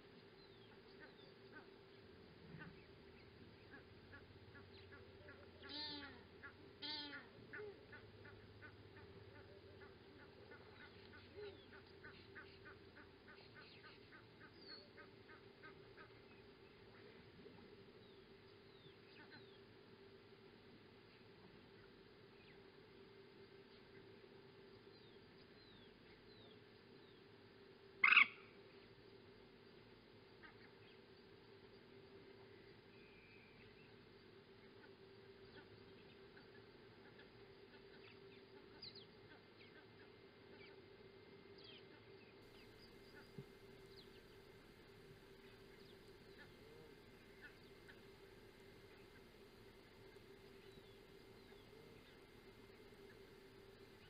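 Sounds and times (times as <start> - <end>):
faint steady hum: 0.0 - 54.0
loud animal call: 5.0 - 6.2, 6.8 - 8.4, 28.0 - 28.4.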